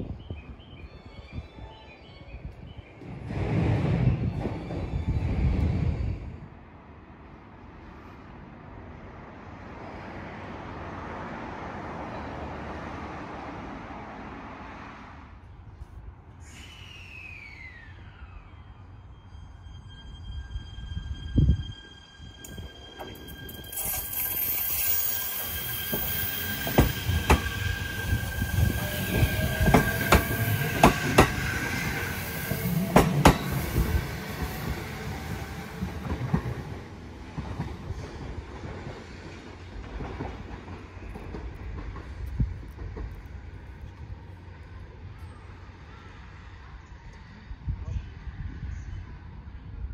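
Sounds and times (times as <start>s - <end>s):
electric train motor whine: 17.7s - 35.7s
steady high-pitched tone: 18.4s - 34.3s
train wheels clacking over rail joints: 29.1s - 31.4s.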